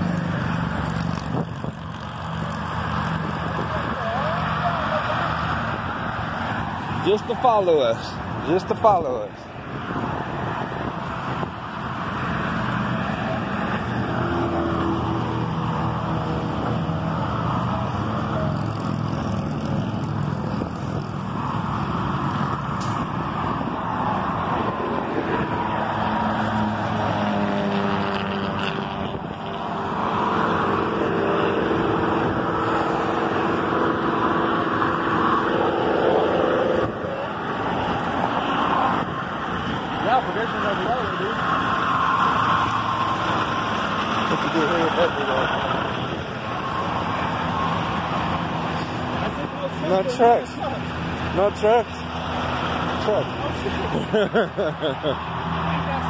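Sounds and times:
cars passing: 0.0 - 56.0.

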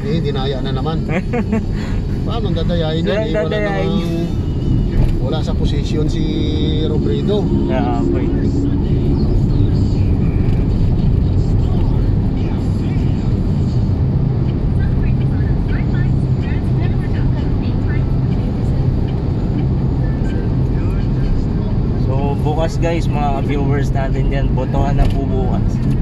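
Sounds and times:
car engine and road noise: 0.0 - 26.0.

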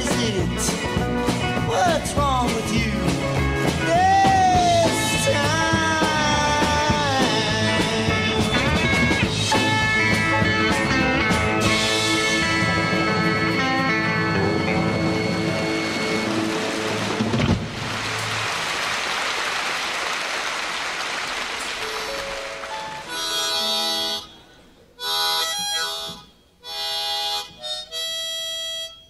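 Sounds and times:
electric rock band playing: 0.0 - 18.5
harmonica notes: 2.9 - 17.0, 21.7 - 29.0
audience applauding: 15.6 - 23.6.

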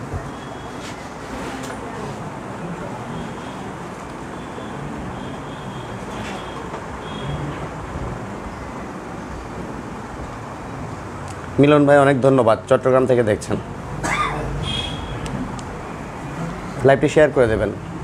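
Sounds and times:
room background noise: 0.0 - 18.0.

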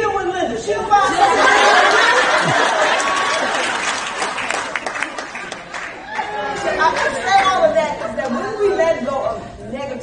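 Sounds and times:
audience laughing: 1.1 - 8.4.

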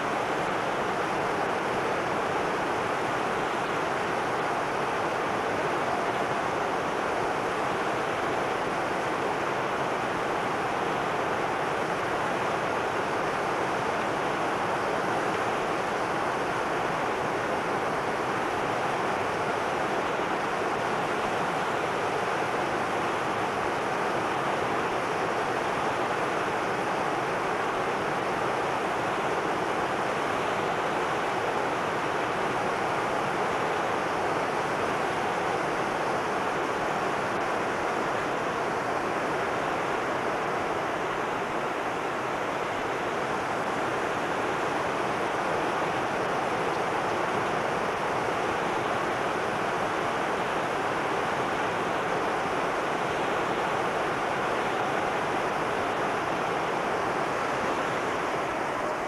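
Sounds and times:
waterfall pouring over rocks: 0.0 - 59.0.

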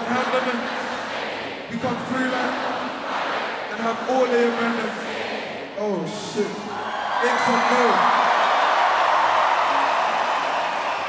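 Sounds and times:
crowd cheering: 6.6 - 11.0.

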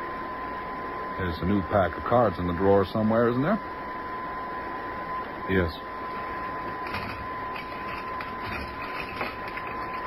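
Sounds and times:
recording hiss and whine: 0.0 - 10.0.

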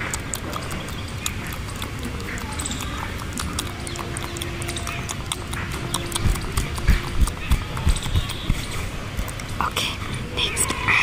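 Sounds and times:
fingers rubbing on microphone: 5.7 - 9.6.

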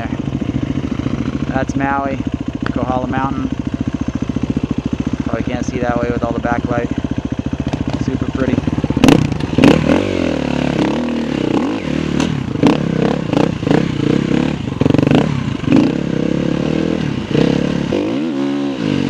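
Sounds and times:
motorcycle engine revving: 0.0 - 19.0
knocks and clatter over rough ground: 7.6 - 9.9.

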